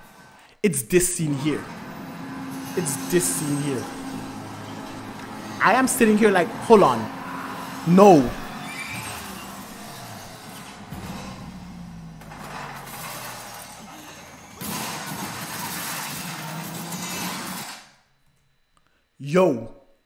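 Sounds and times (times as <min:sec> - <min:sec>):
crashing and shattering glass: 0:08.5 - 0:17.8.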